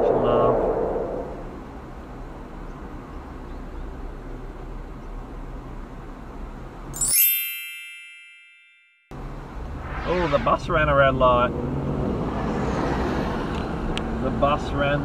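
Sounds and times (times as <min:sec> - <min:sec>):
low hum of road noise: 0:00.0 - 0:07.1, 0:09.1 - 0:15.0
bell-like ding: 0:07.0 - 0:09.1.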